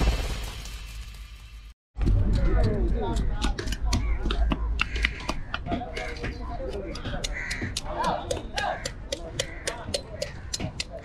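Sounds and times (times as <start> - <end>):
crows cawing: 3.1 - 11.0.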